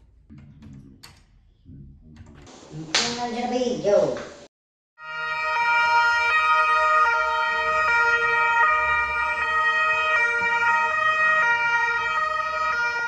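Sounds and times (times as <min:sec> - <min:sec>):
two-tone police siren: 0:05.0 - 0:13.0.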